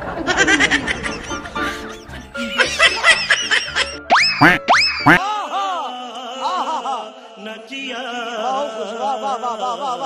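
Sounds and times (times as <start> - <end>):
upbeat comedy music: 0.2 - 5.2
cartoon rising pitch sweeps: 4.1 - 5.2.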